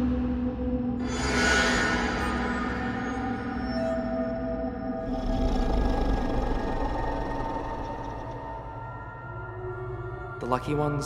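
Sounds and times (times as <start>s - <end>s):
eerie sustained tones: 0.0s - 10.4s
rumbling horror drone: 0.0s - 10.4s.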